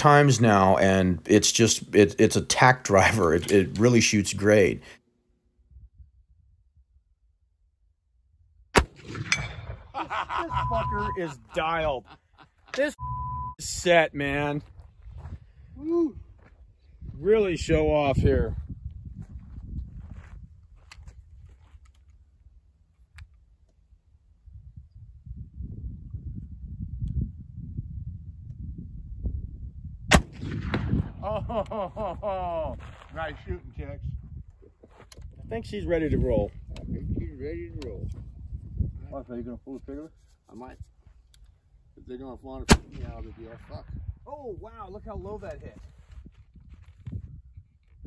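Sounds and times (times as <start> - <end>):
rifle gunshot with ringing tail: 8.8 - 9.9, 30.1 - 31.2, 42.7 - 43.8.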